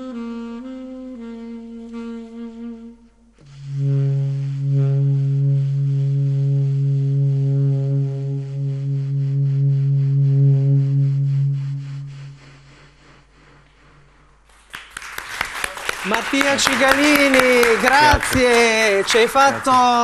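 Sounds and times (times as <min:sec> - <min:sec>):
saxophone long low note: 0:00.0 - 0:14.2.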